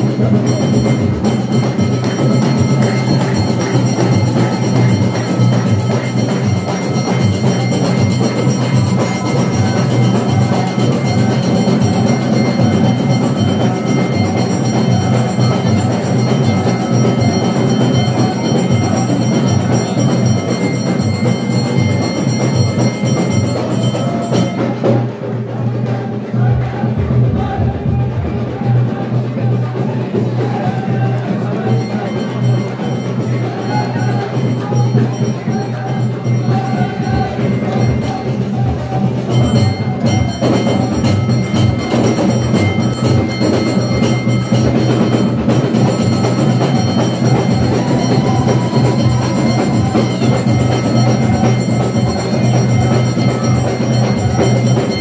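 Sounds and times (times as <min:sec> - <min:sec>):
high held tone: 0:00.0 - 0:24.9, 0:31.2 - 0:55.0
drum-led wedding music: 0:00.0 - 0:55.0.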